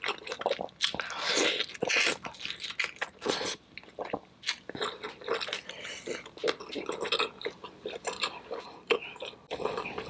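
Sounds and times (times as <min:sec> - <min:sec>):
wet chewing and smacking: 0:00.0 - 0:10.0.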